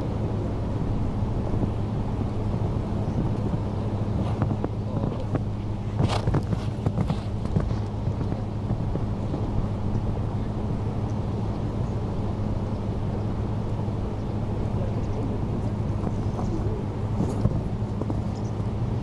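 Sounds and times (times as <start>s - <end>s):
low hum: 0.0s - 19.0s
wind noise on microphone: 0.0s - 19.0s.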